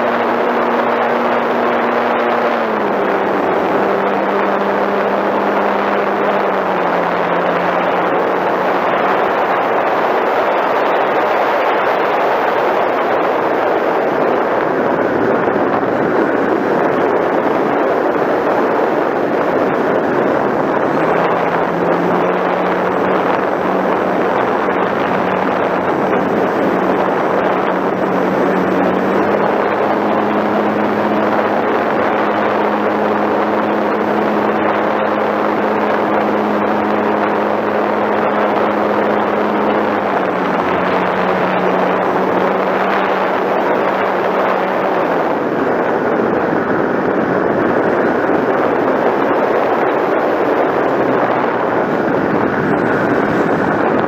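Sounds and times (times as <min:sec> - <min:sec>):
air rushing over wing: 0:00.0 - 0:54.0
electric motor and propeller hum: 0:00.0 - 0:54.0.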